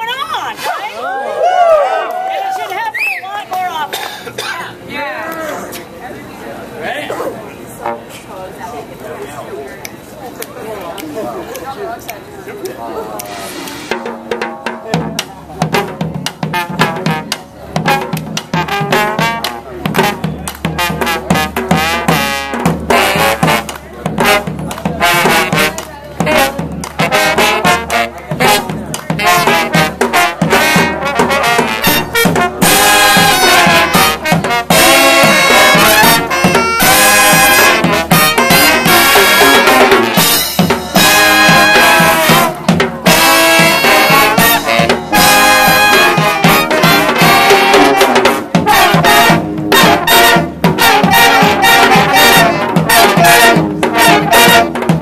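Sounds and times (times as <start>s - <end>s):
brass band playing: 7.7s - 8.3s, 13.2s - 55.0s.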